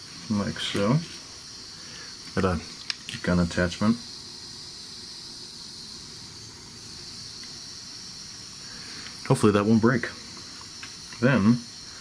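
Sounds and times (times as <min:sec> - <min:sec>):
heat gun blowing hiss: 0:00.0 - 0:12.0.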